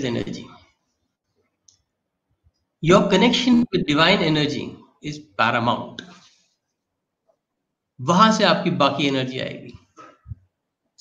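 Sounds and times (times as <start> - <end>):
man speaking: 0.0 - 0.7, 2.8 - 6.2, 8.0 - 9.9.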